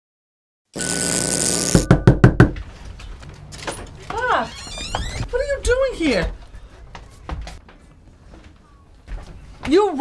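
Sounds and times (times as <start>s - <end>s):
knocking on a door: 1.8s - 2.6s.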